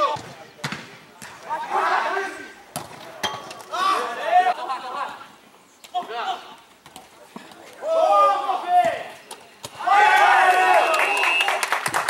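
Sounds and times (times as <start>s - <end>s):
players shouting: 1.2s - 4.7s, 7.8s - 11.6s.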